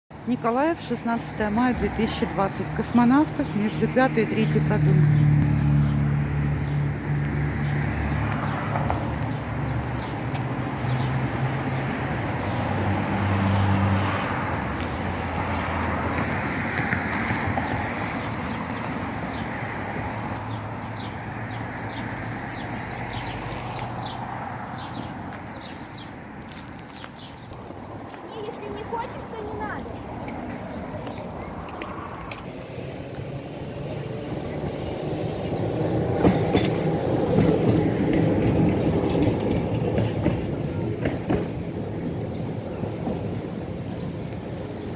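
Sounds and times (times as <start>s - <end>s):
steady traffic noise: 0.1s - 44.9s
car engine and tyres passing: 1.2s - 44.9s
tram wheels rumbling on track: 27.5s - 44.9s.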